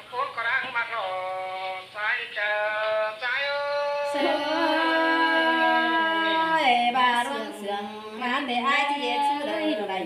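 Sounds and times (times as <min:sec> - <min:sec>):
woman singing long notes: 0:04.0 - 0:10.0.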